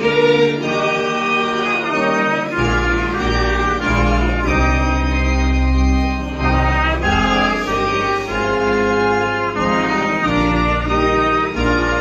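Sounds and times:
choir singing sustained notes: 0.0s - 11.7s.

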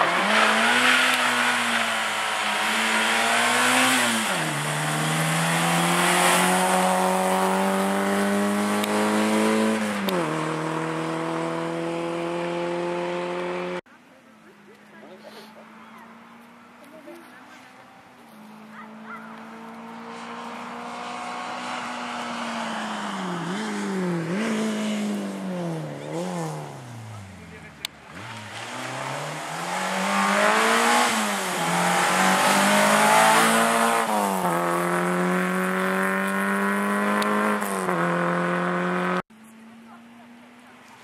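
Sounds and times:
rally car engine revving: 0.0s - 13.8s, 18.7s - 39.3s.

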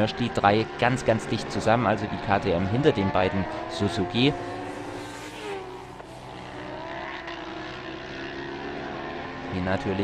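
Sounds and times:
racing motorcycle engines revving: 0.0s - 10.0s.

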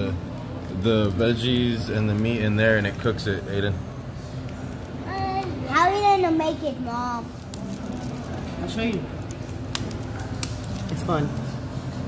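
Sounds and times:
restaurant room hum: 0.0s - 12.0s.

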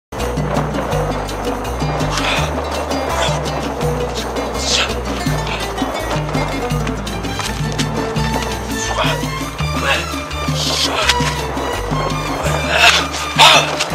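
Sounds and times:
background music with low bass: 0.1s - 13.9s.

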